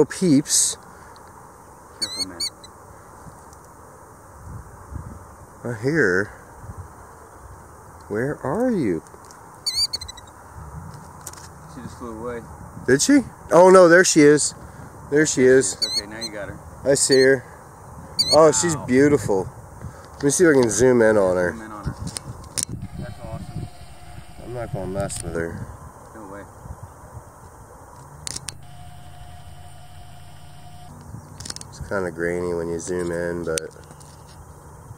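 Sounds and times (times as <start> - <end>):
bird warbling call: 2.0 - 2.7, 9.7 - 10.3, 18.2 - 18.5
wind on microphone: 4.4 - 5.6, 21.8 - 27.6.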